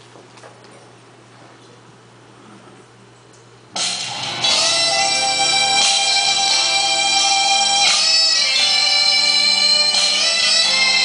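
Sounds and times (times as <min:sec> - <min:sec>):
dance music: 0:03.8 - 0:11.0.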